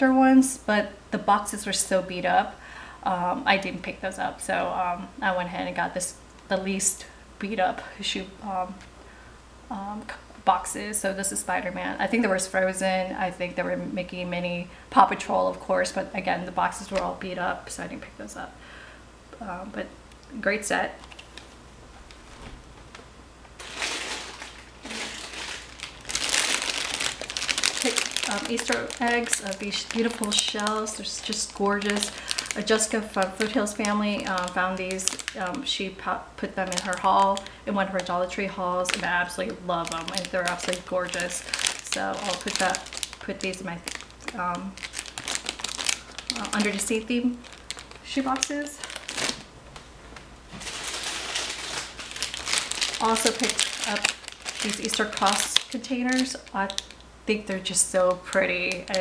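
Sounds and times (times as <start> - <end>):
plastic packaging crinkling: 20.6 - 49.5, 50.5 - 59.0.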